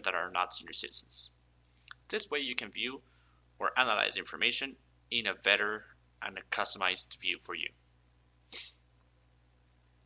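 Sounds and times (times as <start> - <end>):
faint low hum: 0.0 - 10.0
quick sniff: 8.5 - 8.8.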